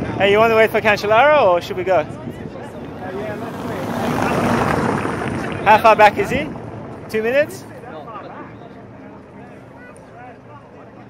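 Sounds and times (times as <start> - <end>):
tyres rumbling on cobblestones: 1.0 - 11.0
car engine passing: 2.6 - 7.2.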